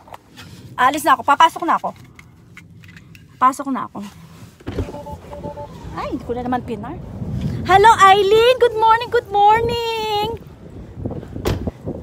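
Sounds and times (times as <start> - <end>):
low rumbling inside car: 0.0 - 12.0
two-note electronic beep: 4.8 - 5.8.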